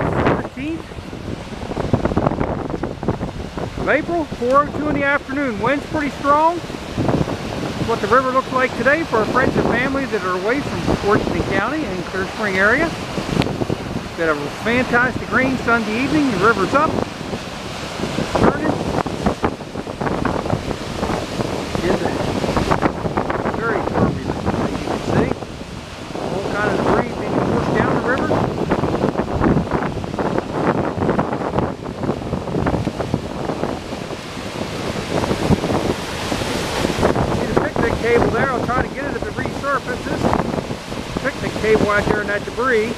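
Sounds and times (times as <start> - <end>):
river rushing: 0.0 - 42.9
wind buffeting microphone: 0.0 - 42.9.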